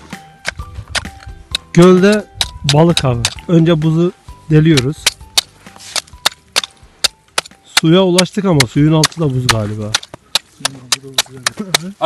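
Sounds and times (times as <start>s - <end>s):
hatchet chopping ice: 4.8s - 12.0s.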